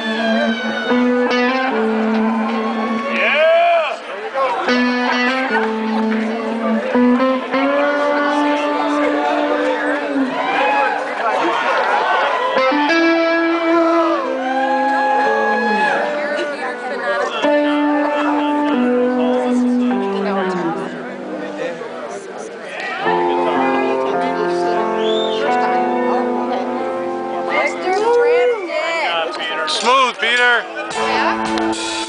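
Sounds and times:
electric guitar lead line: 0.0s - 11.2s, 12.3s - 32.0s
live rock band playing: 0.0s - 11.2s, 11.9s - 32.0s.

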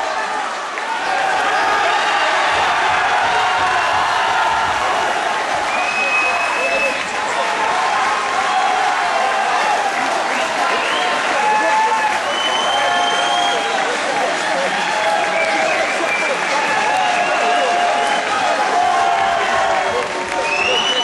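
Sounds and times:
crowd shouting and cheering: 0.0s - 21.0s.

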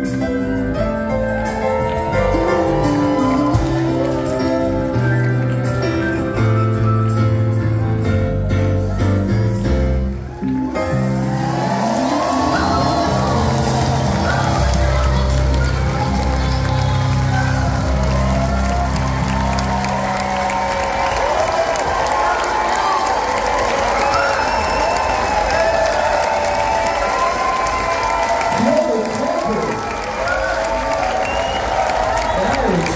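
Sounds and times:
audience applauding and cheering: 0.0s - 32.9s
whoops and shouts: 10.3s - 32.9s.

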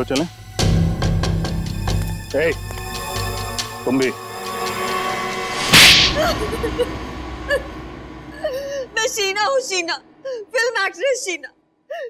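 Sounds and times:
whip-crack swish: 5.6s - 6.3s
faint background music: 8.3s - 12.0s.

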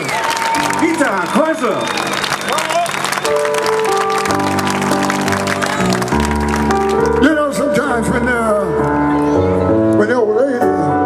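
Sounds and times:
audience clapping: 0.0s - 7.4s.

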